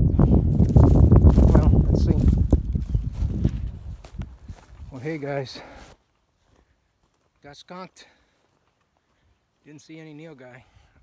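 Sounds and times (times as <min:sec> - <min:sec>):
fabric rustling over dry grass: 0:00.5 - 0:07.2.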